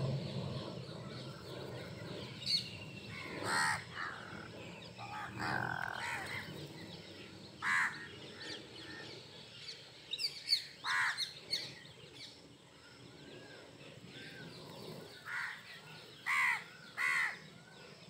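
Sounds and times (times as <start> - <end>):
crows cawing: 3.1 - 6.5, 7.6 - 8.2, 10.8 - 11.3, 15.2 - 15.6, 16.2 - 17.4.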